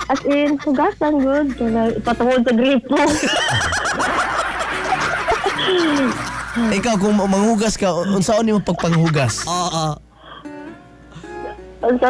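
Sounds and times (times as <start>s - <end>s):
people laughing: 0.0s - 9.8s.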